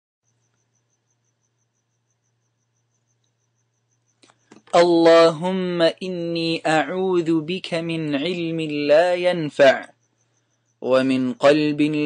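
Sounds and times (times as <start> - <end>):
faint high chirp: 0.2 - 4.8, 8.9 - 12.0.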